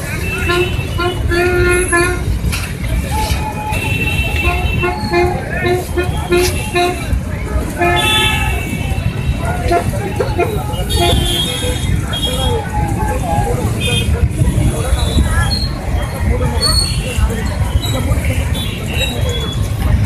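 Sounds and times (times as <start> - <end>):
horn tooting: 0.0 - 2.4, 3.1 - 15.2
crowd voices: 0.0 - 20.0.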